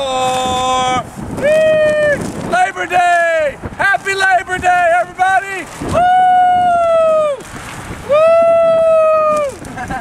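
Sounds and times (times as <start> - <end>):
person cheering wooo: 0.0 - 2.2, 5.9 - 7.4, 8.0 - 9.7.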